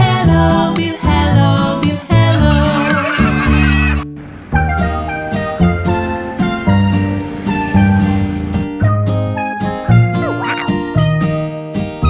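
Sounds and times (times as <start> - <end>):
children's song backing music: 0.0 - 4.0
honking horn sound effect: 3.7 - 8.7.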